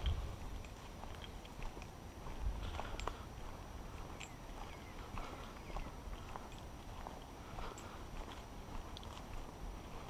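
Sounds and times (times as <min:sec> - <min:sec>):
footsteps on dry leaves: 0:00.0 - 0:10.0.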